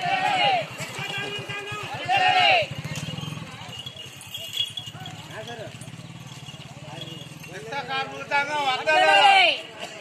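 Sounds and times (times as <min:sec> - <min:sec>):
protesters shouting: 0:00.0 - 0:03.4, 0:08.2 - 0:09.8
motorcycle engine running: 0:00.0 - 0:08.9.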